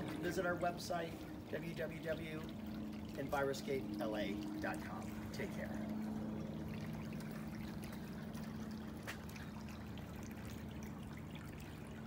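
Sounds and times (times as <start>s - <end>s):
fountain water trickling: 0.0s - 12.0s
low pump hum: 0.0s - 12.0s.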